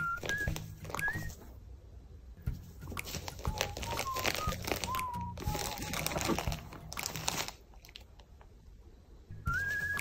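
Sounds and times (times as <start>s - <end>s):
whistling tone: 0.0s - 1.5s, 3.4s - 6.4s, 9.3s - 10.0s.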